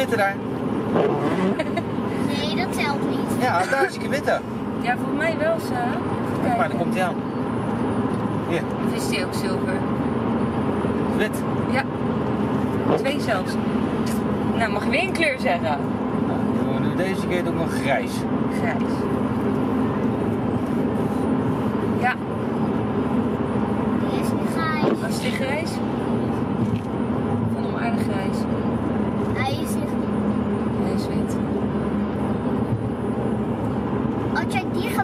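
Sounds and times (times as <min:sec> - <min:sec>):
car road and engine noise: 0:00.0 - 0:35.0
voices: 0:23.9 - 0:26.0, 0:34.3 - 0:35.0.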